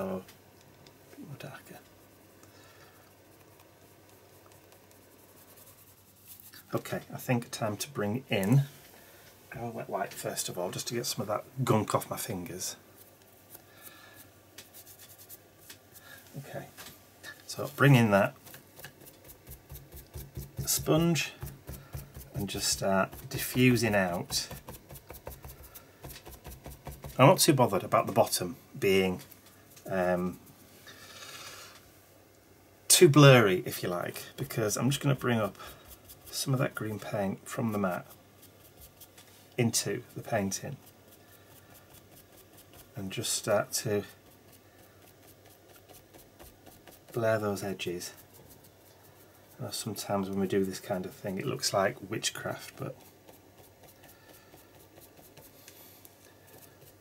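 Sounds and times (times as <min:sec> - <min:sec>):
wet wipe rubbing fingers: 0:03.1 - 0:06.7, 0:11.9 - 0:16.3, 0:17.5 - 0:29.9, 0:33.8 - 0:57.0
sponge scuffing on paper: 0:04.0 - 0:07.0, 0:10.1 - 0:30.1, 0:33.7 - 0:57.0.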